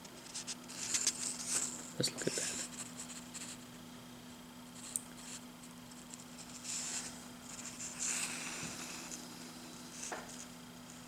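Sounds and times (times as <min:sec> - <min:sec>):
faint steady hum: 0:00.0 - 0:11.0
paper pages rustling: 0:00.2 - 0:03.6.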